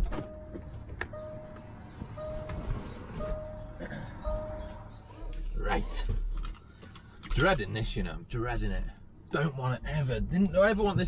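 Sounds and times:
car door warning beep: 0.0s - 5.1s.

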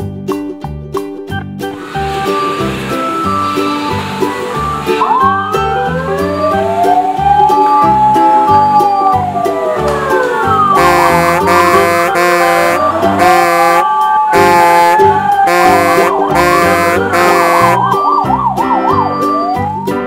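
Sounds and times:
cheerful background music: 0.0s - 20.0s
siren wailing: 3.1s - 20.0s.

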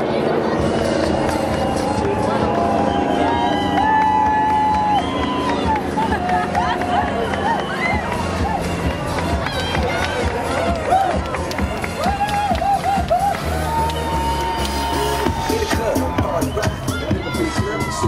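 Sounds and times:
loud music from a bus: 0.1s - 18.0s
crowd cheering and whooping: 0.5s - 18.0s.

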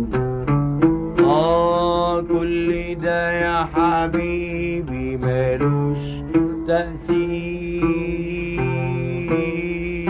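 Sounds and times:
plucked oud melody: 0.0s - 10.0s.

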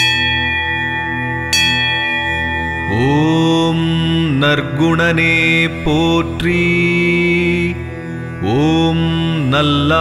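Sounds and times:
bell ringing: 0.0s - 4.5s
low drone: 0.0s - 10.0s.

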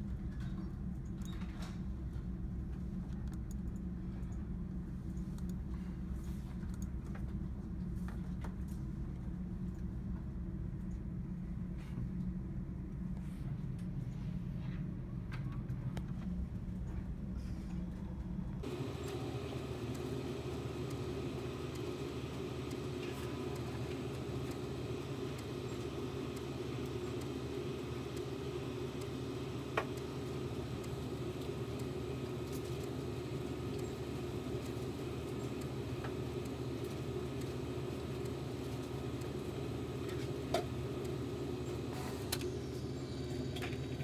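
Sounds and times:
printer mechanical hum: 0.0s - 44.0s.

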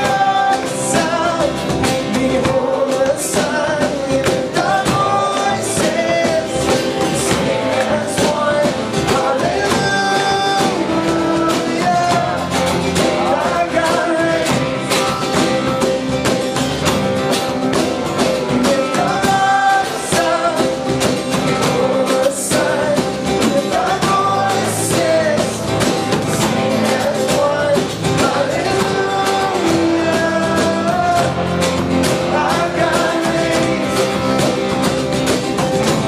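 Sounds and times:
man singing lead vocals: 0.0s - 16.5s, 17.2s - 36.0s
acoustic and electric guitars: 0.0s - 36.0s
cajon: 0.0s - 36.0s
drum kit: 0.0s - 36.0s.

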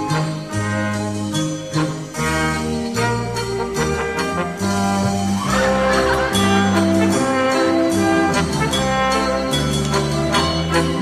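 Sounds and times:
brass chords: 0.0s - 11.0s
long bass notes: 0.0s - 11.0s.

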